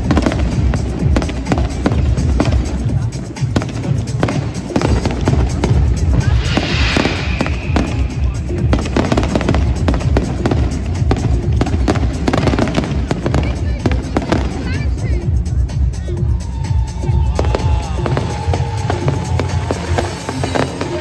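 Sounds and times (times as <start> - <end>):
music: 0.0 - 21.0
people's voices: 0.0 - 21.0
hissing firework crackle: 3.6 - 13.5, 18.0 - 21.0.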